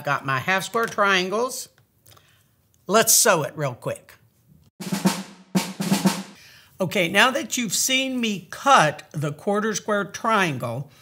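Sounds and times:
drum hits with snare: 4.8s - 6.4s.

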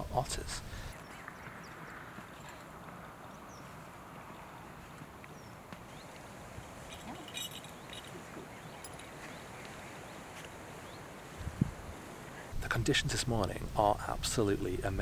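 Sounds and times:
steady low hiss: 0.0s - 15.0s.

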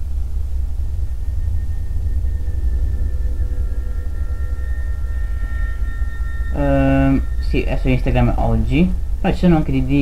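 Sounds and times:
faint held tones: 0.0s - 10.0s
steady low rumble: 0.0s - 10.0s.

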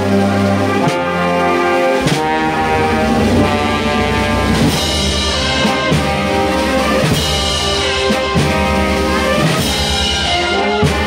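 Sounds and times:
wind band playing a march: 0.0s - 11.0s
drum strokes: 0.8s - 11.0s.

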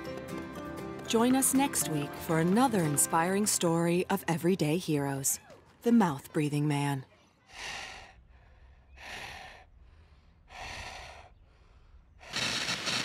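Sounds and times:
person breathing heavily: 7.4s - 12.6s.

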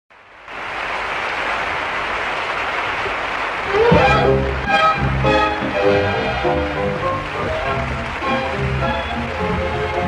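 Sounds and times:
audience applauding: 0.2s - 10.0s
orchestral music: 3.6s - 10.0s.

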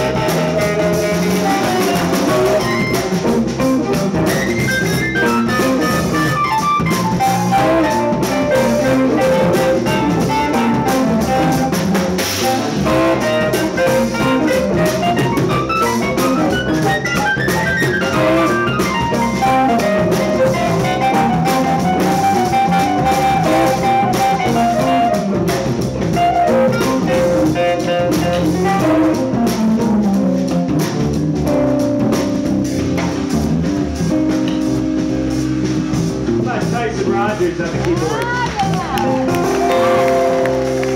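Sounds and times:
violin melody: 0.0s - 25.5s
bass: 0.0s - 40.9s
drumming: 0.0s - 40.9s
guitar: 0.0s - 40.9s
keyboard: 0.0s - 40.9s.

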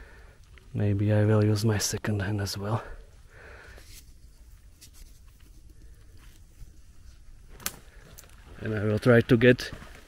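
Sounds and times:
handheld camera rumble: 0.0s - 10.0s
soft crackles of needle litter: 2.8s - 10.0s.

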